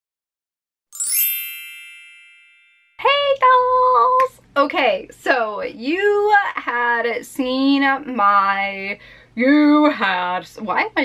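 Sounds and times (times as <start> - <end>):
bright chime ringing: 0.9 - 3.1.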